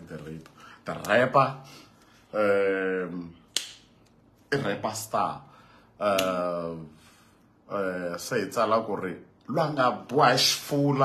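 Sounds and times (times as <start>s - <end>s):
finger snap: 3.4s - 4.2s, 6.0s - 6.5s.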